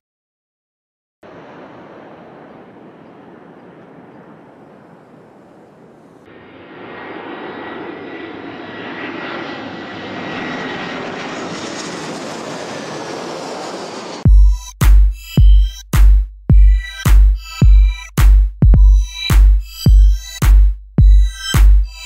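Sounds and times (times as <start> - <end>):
airplane engine rushing hum: 1.2 - 14.3.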